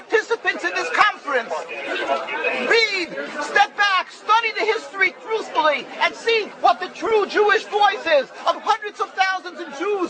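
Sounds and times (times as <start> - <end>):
voices arguing: 0.0 - 10.0.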